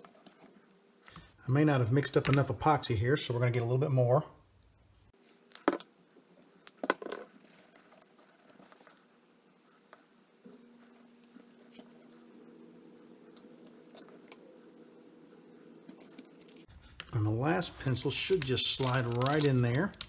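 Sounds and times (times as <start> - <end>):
low steady hum: 7.4 - 20.0.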